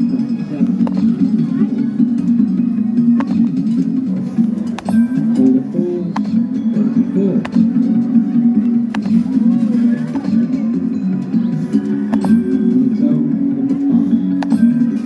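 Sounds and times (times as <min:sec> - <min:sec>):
arcade machine music and jingles: 0:00.0 - 0:15.0.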